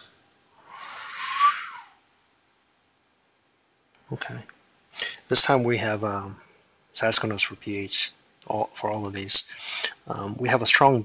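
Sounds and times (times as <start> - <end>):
person breathing close to microphone: 0.6 - 2.0, 5.0 - 5.3, 9.5 - 10.1.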